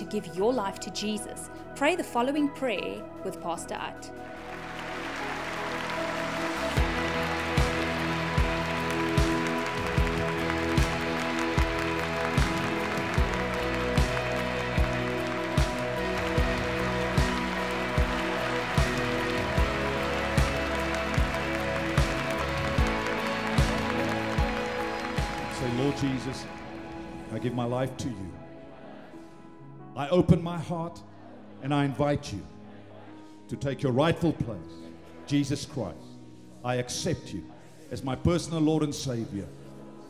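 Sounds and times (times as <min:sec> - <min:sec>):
worship band held chords: 0:00.0 - 0:40.0
congregation clapping along: 0:04.2 - 0:28.0.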